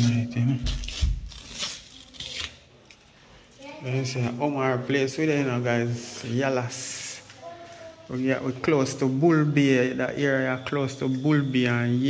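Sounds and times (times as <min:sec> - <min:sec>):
tape ripping and crinkling: 0:00.6 - 0:03.0.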